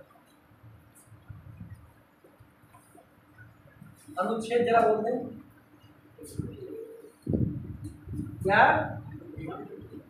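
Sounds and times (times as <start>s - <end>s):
pigeon cooing: 6.2s - 7.5s, 9.0s - 10.0s.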